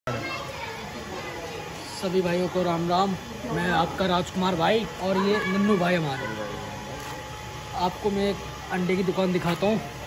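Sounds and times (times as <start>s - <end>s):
distant voices and chatter: 0.1s - 10.0s
steady background hum: 0.1s - 10.0s.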